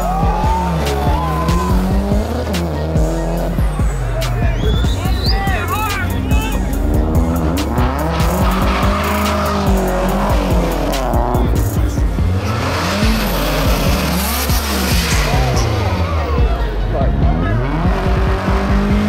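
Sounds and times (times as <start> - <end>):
car engine revving: 0.0 - 19.0.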